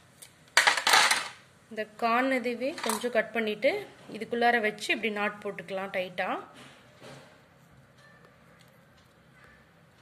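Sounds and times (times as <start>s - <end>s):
scissors clattering on hard surface: 2.8s - 3.1s.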